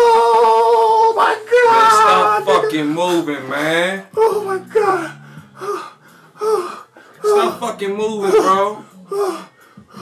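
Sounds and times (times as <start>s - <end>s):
man gasping cries: 4.2s - 7.4s.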